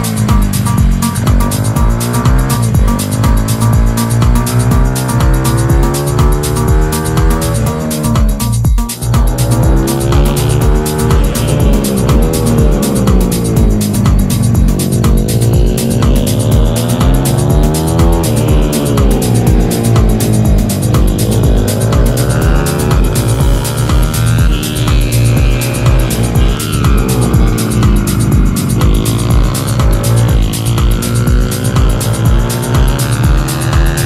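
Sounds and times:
background music with beat: 0.0 - 34.0
motorbike engine revving: 0.0 - 34.0.

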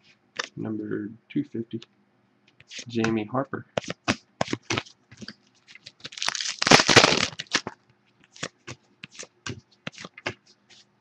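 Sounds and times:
foil pack tearing and crinkling: 5.7 - 7.7.

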